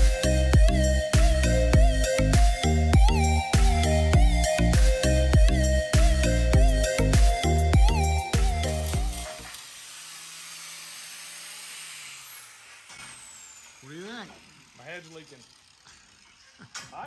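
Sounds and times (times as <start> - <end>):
background music: 0.0 - 9.5
hand-held grinder grinding metal: 0.0 - 17.0.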